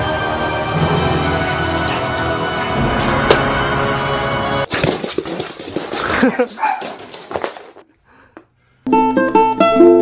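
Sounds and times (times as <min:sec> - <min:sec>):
man laughing: 0:06.0 - 0:06.6
puppy barking: 0:06.6 - 0:07.0
ukulele music: 0:08.9 - 0:10.0.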